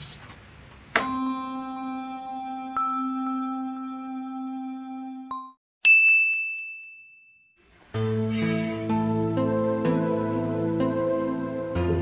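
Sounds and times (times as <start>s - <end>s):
chime-like musical tone: 1.0s - 7.6s
bright ding: 5.8s - 7.6s.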